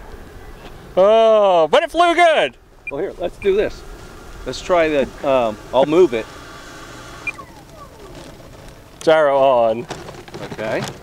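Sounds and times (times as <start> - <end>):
electric fan winding down whine: 2.7 - 7.7.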